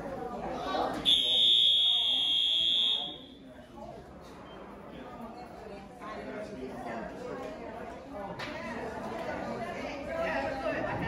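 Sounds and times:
fire alarm tone: 1.1 - 3.4.

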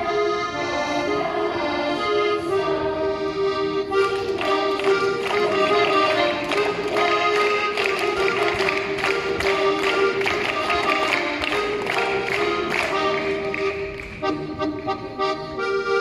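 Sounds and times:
accordion folk dance tune: 0.0 - 16.0
tapping percussion beat: 4.1 - 15.3.

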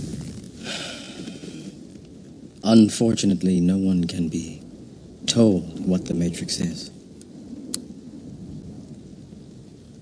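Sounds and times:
low rumble of thunder: 0.0 - 10.0
rain: 0.0 - 10.0.

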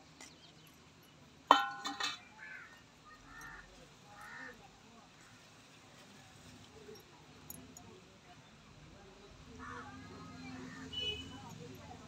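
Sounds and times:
metallic clink: 1.5 - 2.3.

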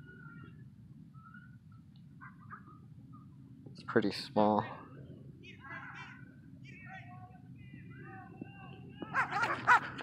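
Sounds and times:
faint wavering calls: 0.0 - 3.5
dogs barking loudly: 9.1 - 10.0.

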